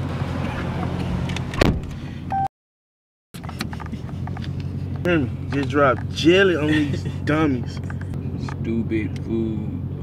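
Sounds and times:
car door shutting: 1.2s - 2.0s
short beep: 2.3s - 2.5s
car engine idling: 3.4s - 9.3s.

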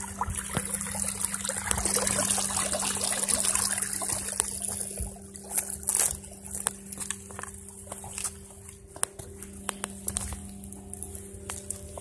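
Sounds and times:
steady low hum: 0.0s - 12.0s
footsteps on mud and rocks: 4.0s - 12.0s.

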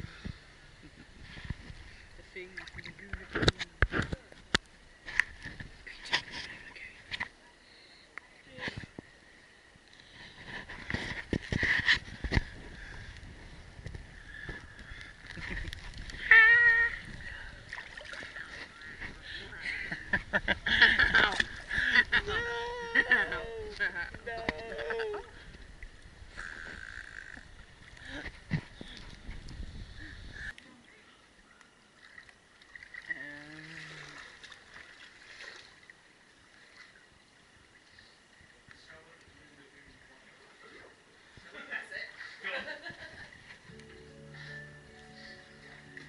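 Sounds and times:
water lapping and sloshing: 0.1s - 7.4s, 8.4s - 44.0s
small splashes: 14.8s - 19.2s, 32.0s - 38.1s
person humming: 33.1s - 34.2s
high-pitched wavering call: 43.7s - 46.0s.

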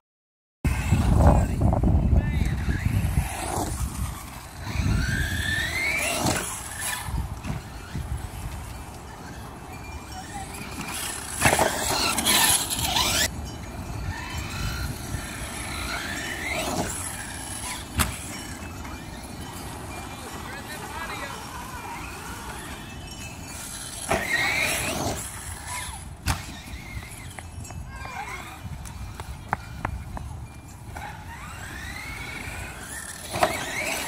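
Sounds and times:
electric motor whining: 0.7s - 34.0s.

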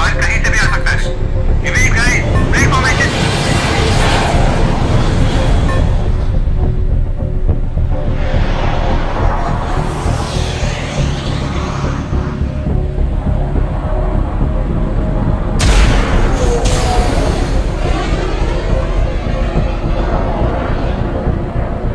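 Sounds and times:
steady low rumble: 0.0s - 21.9s
tense dark film score: 0.0s - 21.9s
sudden loud blast: 15.6s - 20.5s.

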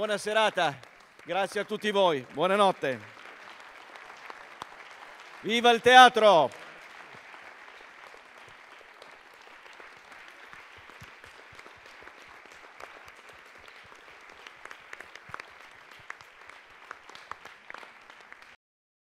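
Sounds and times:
audience applauding: 0.0s - 18.6s
sharp individual claps: 0.0s - 18.6s.

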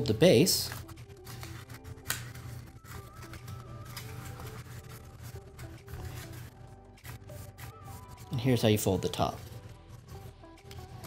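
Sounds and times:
background music with steady tones: 0.0s - 11.0s.

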